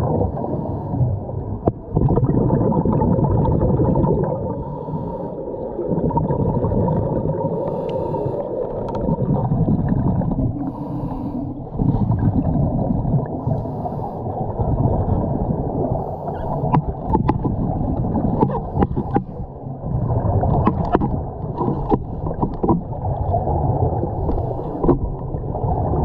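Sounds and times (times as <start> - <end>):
underwater regulator bubbles: 0.0 - 26.0.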